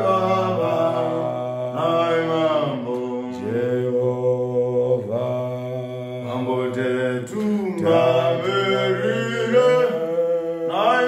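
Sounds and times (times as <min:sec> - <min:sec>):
men singing in harmony: 0:00.0 - 0:11.0.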